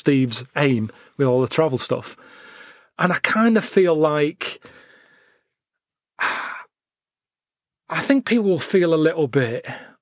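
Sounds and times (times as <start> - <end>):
man sighing breath: 6.2 - 6.7.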